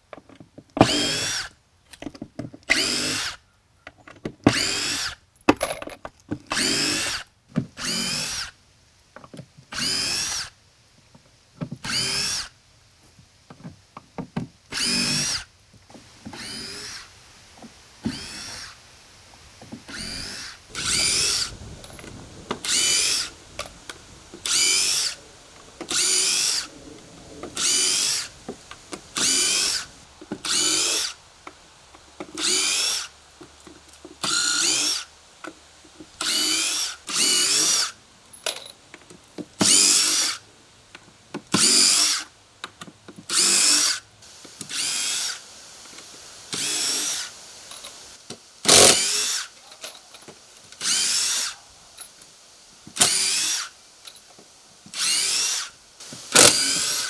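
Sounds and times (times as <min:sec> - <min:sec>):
cordless drill motor whining: 0:00.8 - 0:01.5, 0:02.7 - 0:03.4, 0:04.5 - 0:05.2, 0:06.5 - 0:08.6, 0:09.7 - 0:10.5, 0:11.8 - 0:12.5, 0:14.7 - 0:15.5, 0:16.2 - 0:17.1, 0:18.0 - 0:18.8, 0:19.9 - 0:23.7, 0:24.4 - 0:25.2, 0:25.8 - 0:26.7, 0:27.6 - 0:28.3, 0:28.9 - 0:31.2, 0:32.4 - 0:33.1, 0:34.2 - 0:35.1, 0:36.2 - 0:38.0, 0:39.6 - 0:40.4, 0:41.6 - 0:42.2, 0:43.3 - 0:44.0, 0:44.6 - 0:45.4, 0:46.5 - 0:47.3, 0:48.6 - 0:49.5, 0:50.8 - 0:51.6, 0:53.0 - 0:53.7, 0:54.9 - 0:55.7, 0:56.3 - 0:57.0.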